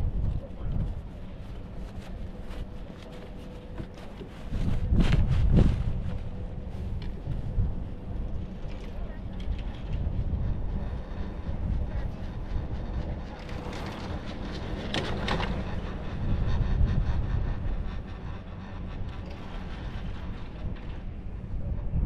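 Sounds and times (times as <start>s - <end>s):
low rumble: 0.0s - 22.0s
wind on microphone: 0.0s - 22.0s.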